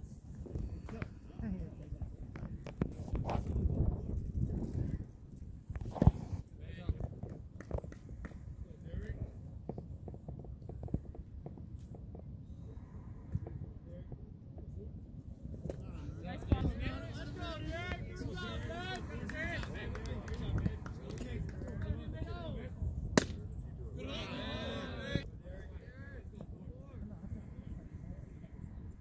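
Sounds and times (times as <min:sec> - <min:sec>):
spectators talking: 0:15.8 - 0:29.0
baseball impact pop: 0:23.1 - 0:23.5.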